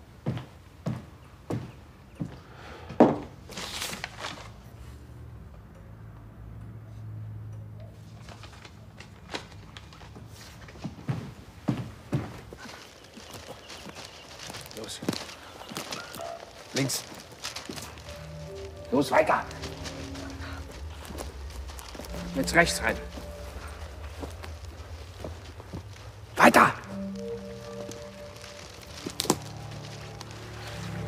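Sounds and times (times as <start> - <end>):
footsteps crunching on leaves: 12.5 - 31.0
low steady hum: 17.9 - 31.0.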